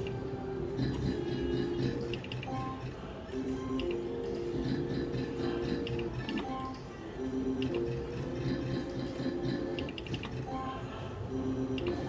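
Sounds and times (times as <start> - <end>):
slot machine music: 0.0 - 12.0.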